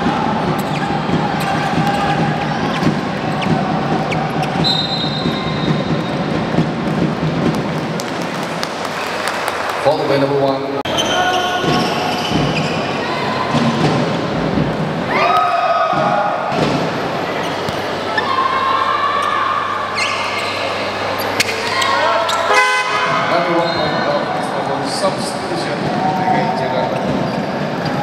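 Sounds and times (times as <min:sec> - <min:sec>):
people shouting: 0:00.0 - 0:06.0, 0:15.0 - 0:16.6, 0:18.0 - 0:20.0
horn toots: 0:22.5 - 0:23.9.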